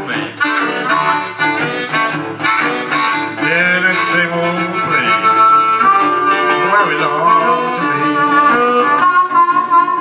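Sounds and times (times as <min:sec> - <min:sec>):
person singing: 0:00.0 - 0:01.6, 0:03.0 - 0:10.0
harmonica long note: 0:00.0 - 0:10.0
resonator guitar accompaniment: 0:00.0 - 0:10.0.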